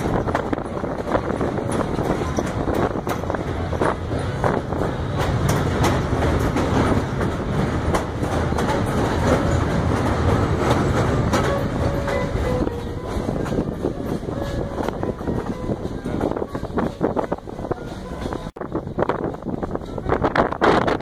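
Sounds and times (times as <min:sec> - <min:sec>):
train clicks and clacks: 0:00.0 - 0:21.0
train wheels rumbling on rails: 0:00.0 - 0:21.0.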